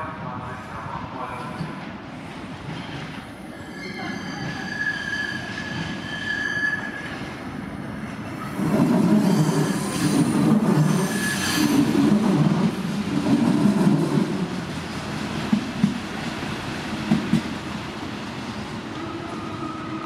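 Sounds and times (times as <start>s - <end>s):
rumble of wheels on rail: 0.0s - 20.0s
train wheels squealing: 2.8s - 7.4s, 8.4s - 12.0s, 19.0s - 20.0s.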